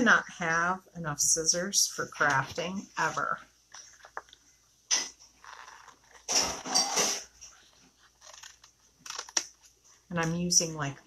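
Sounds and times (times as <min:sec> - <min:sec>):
plastic sheets rustling: 0:02.2 - 0:10.1.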